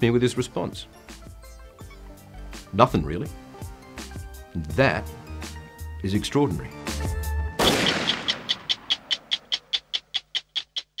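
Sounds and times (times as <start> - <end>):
stopwatch ticking: 8.1 - 11.0.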